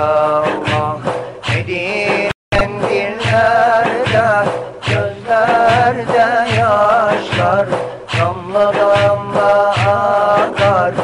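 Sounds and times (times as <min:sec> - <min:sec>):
person singing a hymn: 0:00.0 - 0:01.1, 0:01.7 - 0:11.0
instrumental accompaniment: 0:00.0 - 0:11.0
low drum beat: 0:00.0 - 0:11.0.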